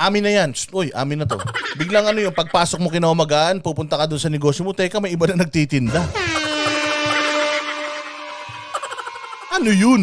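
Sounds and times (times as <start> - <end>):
air horn blast: 5.9 - 9.9.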